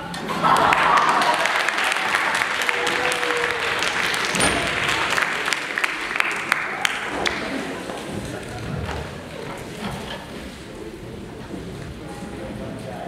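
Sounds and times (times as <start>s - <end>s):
audience applauding: 0.0s - 9.7s.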